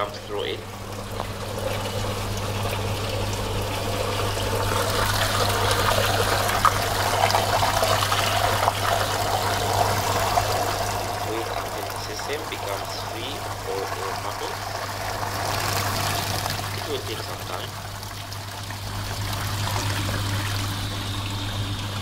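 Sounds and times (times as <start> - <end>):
pump humming: 0.0 - 22.0
water splashing into tank: 0.0 - 22.0.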